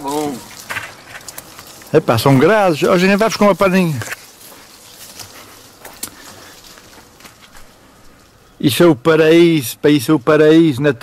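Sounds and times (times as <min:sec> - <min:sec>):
twigs clicking and snapping: 0:00.0 - 0:08.6
leaves rustling: 0:00.0 - 0:11.0.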